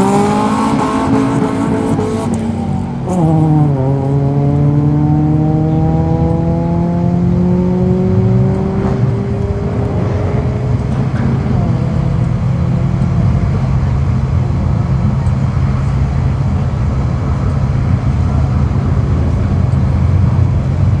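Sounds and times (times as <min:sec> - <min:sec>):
cars accelerating: 0:00.0 - 0:21.0
steady low rumble: 0:07.9 - 0:21.0.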